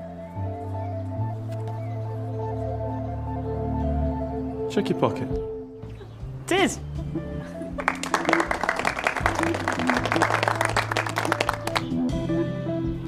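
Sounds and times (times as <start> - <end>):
background music with held notes: 0.0 - 13.0
people clapping: 7.7 - 12.0.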